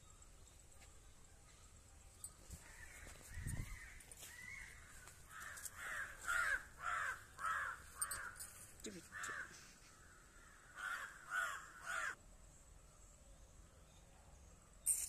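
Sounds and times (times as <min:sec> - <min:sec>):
crow cawing: 0:04.3 - 0:08.4, 0:09.1 - 0:12.2.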